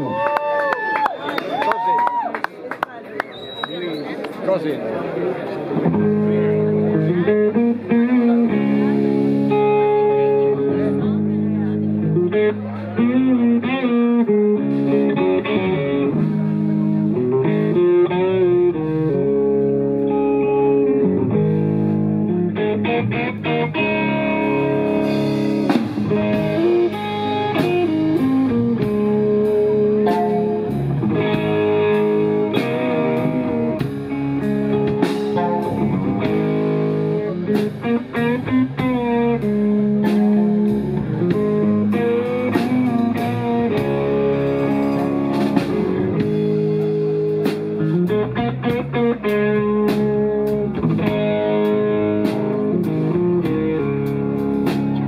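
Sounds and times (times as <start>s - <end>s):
bass guitar: 0.0s - 2.3s, 5.4s - 55.0s
electric guitar: 5.4s - 55.0s
drum kit: 5.9s - 10.7s, 11.9s - 55.0s.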